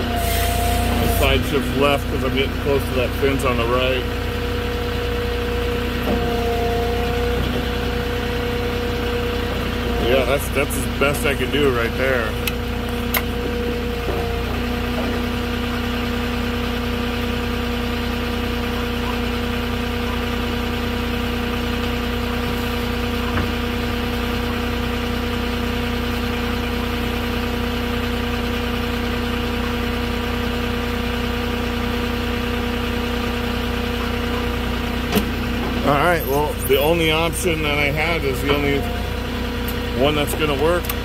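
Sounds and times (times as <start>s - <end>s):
forklift engine idling: 0.0s - 41.0s.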